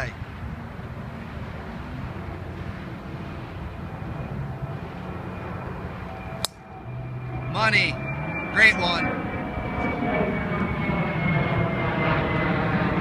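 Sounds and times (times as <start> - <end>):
distant engine hum: 0.0 - 13.0
golf club striking ball: 6.4 - 6.7.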